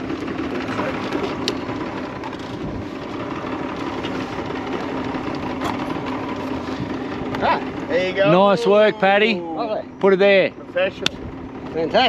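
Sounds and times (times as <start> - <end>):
outboard motor idling: 0.0 - 12.0.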